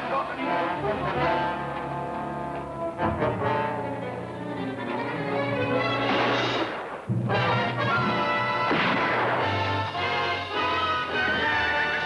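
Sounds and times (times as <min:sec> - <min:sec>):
orchestral music with brass: 0:00.0 - 0:12.0.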